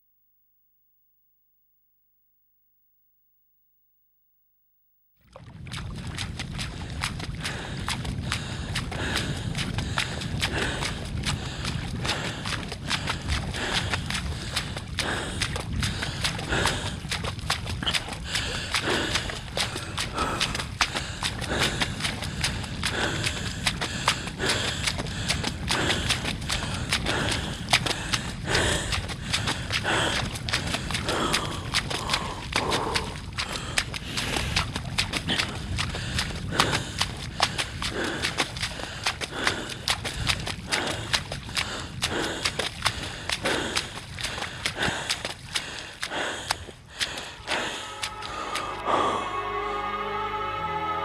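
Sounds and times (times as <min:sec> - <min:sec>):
footsteps on dry ground: 0:05.6 - 0:49.0
low rumbling noise: 0:46.5 - 0:51.0.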